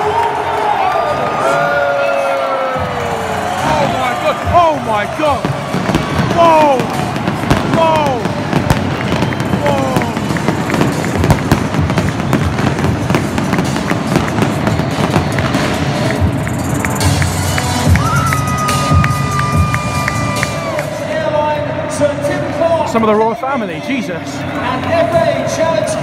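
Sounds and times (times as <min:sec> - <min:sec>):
stadium crowd noise: 0:00.0 - 0:26.0
pyrotechnic cracks and bangs: 0:05.3 - 0:17.2.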